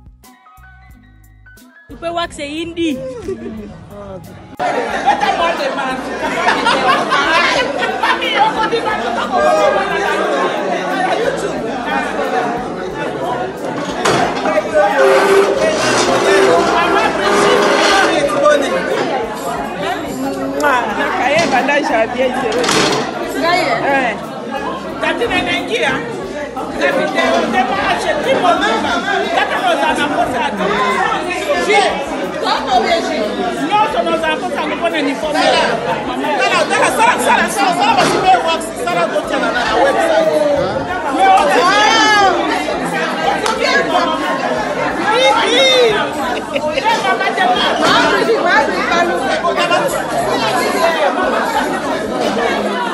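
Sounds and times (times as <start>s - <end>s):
overlapping chatter of voices: 0.0s - 52.9s
people laughing: 2.8s - 52.9s.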